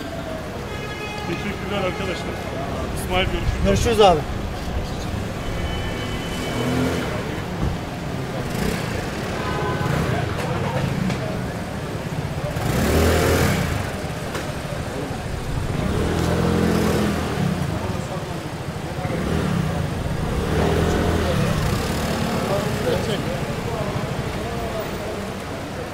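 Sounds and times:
car engines passing: 0.0s - 25.9s
indistinct voices: 0.0s - 25.9s.

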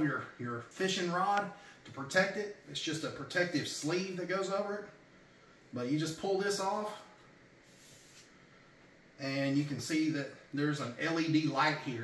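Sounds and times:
faint swish of sleeve sliding: 7.6s - 8.4s.

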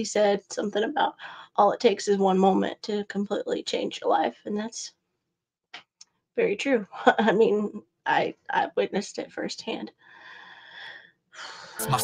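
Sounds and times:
rap music with beat: 11.8s - 12.0s.

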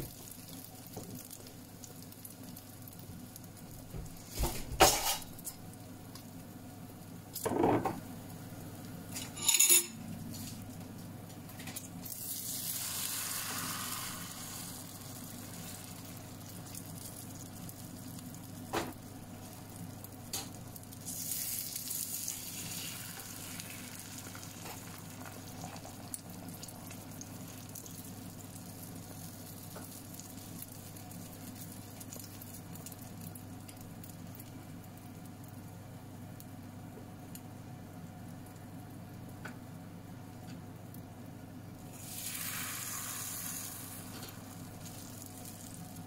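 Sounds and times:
egg sizzling in a pan: 0.0s - 46.0s.

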